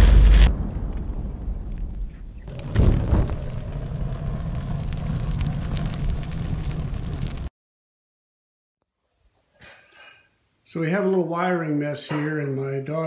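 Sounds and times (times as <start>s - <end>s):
explosion boom: 0.0s - 7.5s
fire crackling: 0.0s - 7.5s
low rumble: 0.0s - 7.5s.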